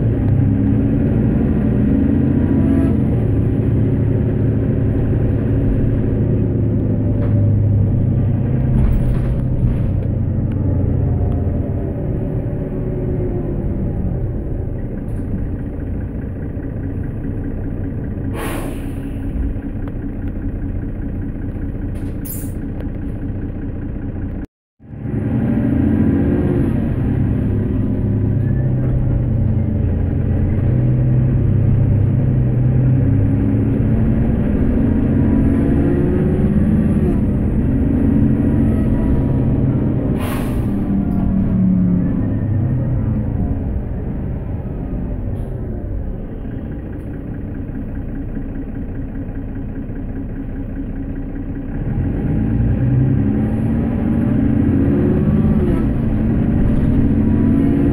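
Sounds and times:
bus diesel engine running: 0:00.0 - 0:57.9
short hissing: 0:18.3 - 0:19.4, 0:40.2 - 0:40.8.

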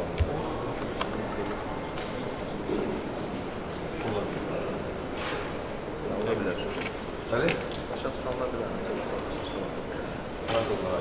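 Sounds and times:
buzzy room hum: 0:00.0 - 0:11.0.

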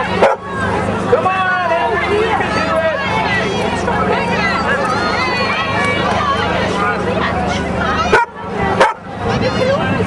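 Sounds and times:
crowd chatter: 0:00.0 - 0:10.0
dog barking: 0:00.2 - 0:00.4, 0:08.1 - 0:09.0.

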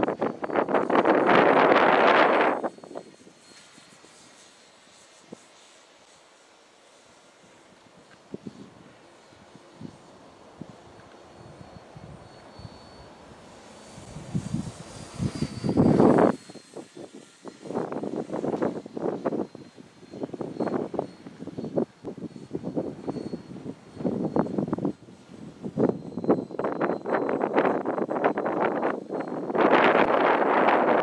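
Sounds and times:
wind buffeting microphone: 0:00.0 - 0:04.5, 0:07.4 - 0:31.0
faint high electric motor whine: 0:00.0 - 0:31.0.

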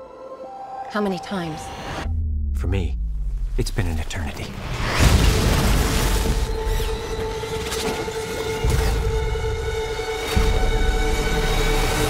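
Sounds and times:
low rumble: 0:01.6 - 0:06.6
deep booms and impacts: 0:02.0 - 0:06.6.

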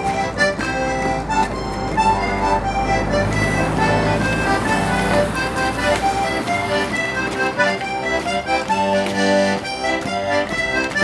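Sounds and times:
accordion folk dance tune: 0:00.0 - 0:11.0.

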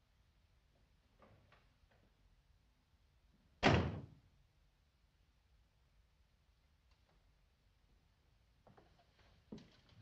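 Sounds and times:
door slamming shut: 0:03.6 - 0:04.2.

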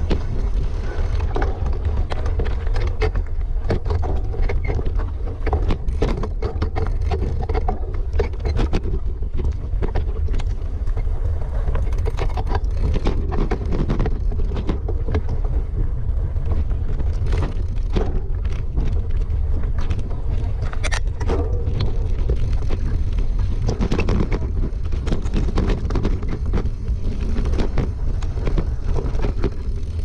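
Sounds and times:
mountain bike rattling: 0:00.0 - 0:30.0
wind rumble on microphone: 0:00.0 - 0:30.0.

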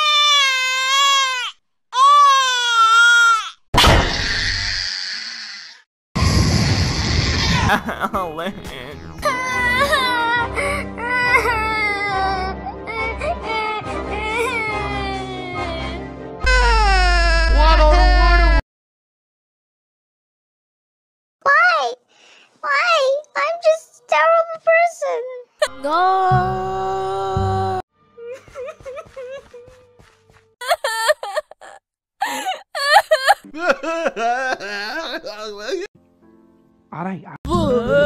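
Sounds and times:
cartoon character crying: 0:14.2 - 0:18.6, 0:30.6 - 0:33.5.

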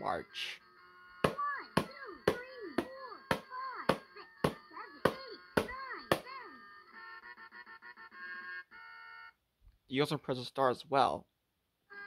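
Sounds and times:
toy recorded voice: 0:01.3 - 0:08.0.

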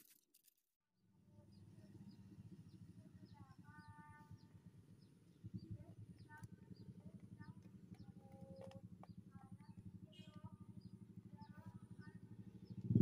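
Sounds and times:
small birds chirping: 0:01.2 - 0:13.0
low pulsing rumble: 0:01.4 - 0:13.0.

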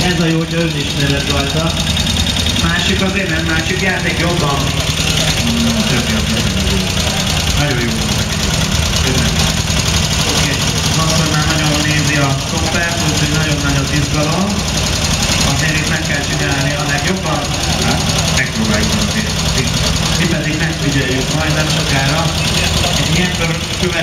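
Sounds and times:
motorcycle engine idling: 0:00.0 - 0:24.0
voices talking: 0:00.0 - 0:24.0.

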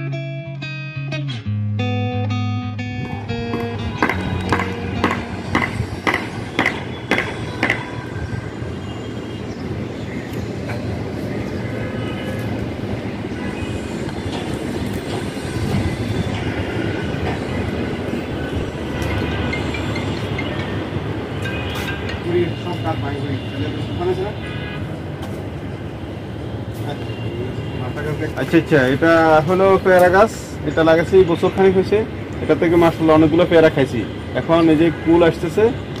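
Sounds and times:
passing vehicle rumble: 0:02.8 - 0:30.8.

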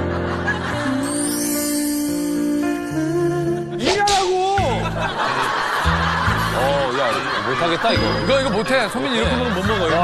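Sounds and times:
background music with bass: 0:02.4 - 0:07.0
people chuckling: 0:04.7 - 0:10.0.

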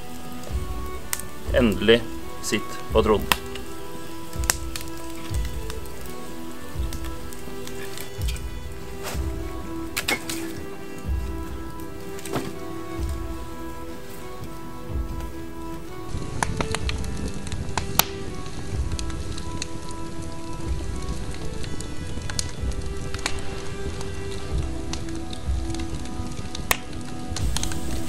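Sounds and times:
droning background music: 0:00.0 - 0:28.0
wood fire crackling and popping: 0:00.0 - 0:28.0.

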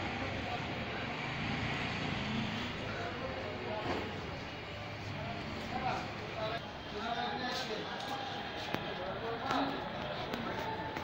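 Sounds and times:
traffic noise: 0:00.0 - 0:11.0.

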